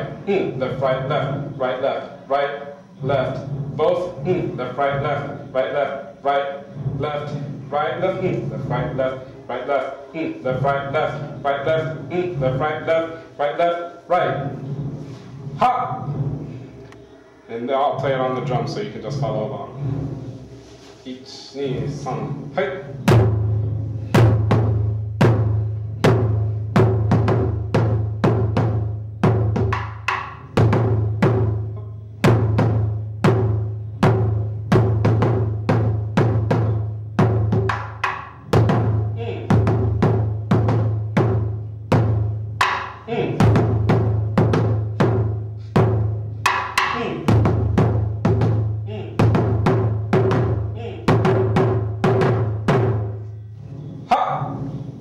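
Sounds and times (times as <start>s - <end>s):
taiko drum strokes: 0.0s - 55.0s.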